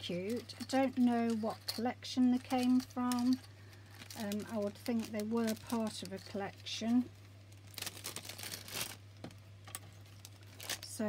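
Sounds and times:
rustling and crinkling of packaging: 0:00.0 - 0:11.0.

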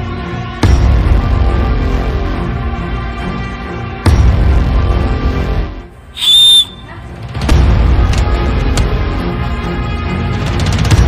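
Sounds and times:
background music: 0:00.0 - 0:11.0
high whistle note: 0:06.2 - 0:06.9.

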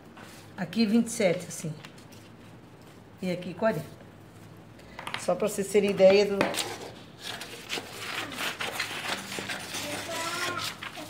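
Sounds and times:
paper rustling: 0:06.4 - 0:11.0
scissors snipping paper: 0:06.6 - 0:11.0.

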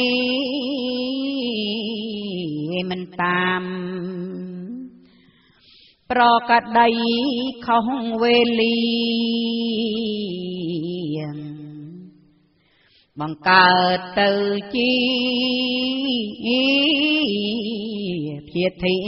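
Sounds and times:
woman chanting verse: 0:00.0 - 0:05.0, 0:06.1 - 0:12.2, 0:13.1 - 0:19.0.

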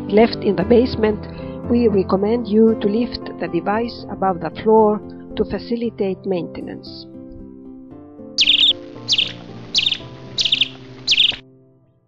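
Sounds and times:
soft background music: 0:00.0 - 0:12.0
high bird chirps: 0:08.4 - 0:11.4.

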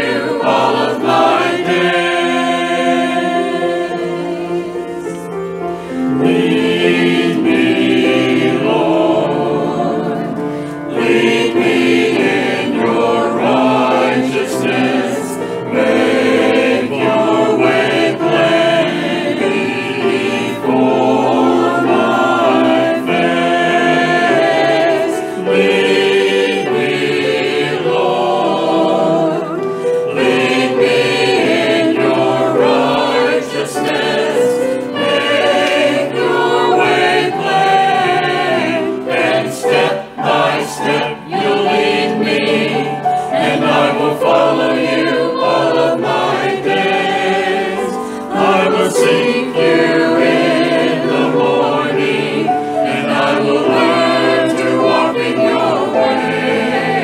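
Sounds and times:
choir singing: 0:00.0 - 0:57.0.

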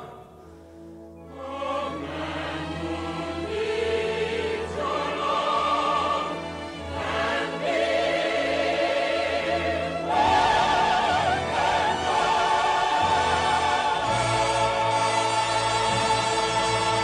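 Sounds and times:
choir singing held notes: 0:01.2 - 0:17.0
orchestra playing: 0:10.0 - 0:17.0.

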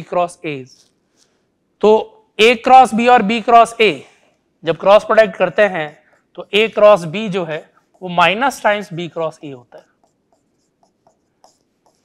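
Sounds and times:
pen scratching on a board: 0:04.9 - 0:12.0.

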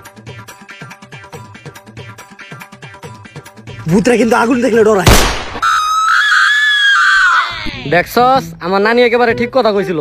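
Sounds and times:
high-pitched scream-like cry: 0:05.6 - 0:07.9.

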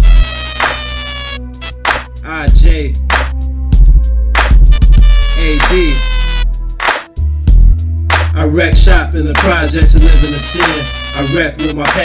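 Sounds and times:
kick drum: 0:03.8 - 0:05.3, 0:07.5 - 0:07.8
snare hit: 0:06.8 - 0:07.1.

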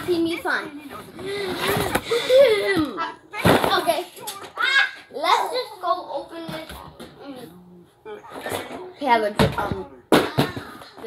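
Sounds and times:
child talking: 0:00.0 - 0:01.0, 0:02.6 - 0:07.6.

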